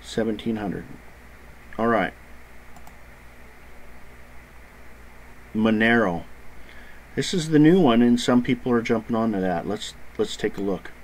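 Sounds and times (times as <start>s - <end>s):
low steady hum: 0.0s - 11.0s
faint computer clicks: 2.7s - 3.0s.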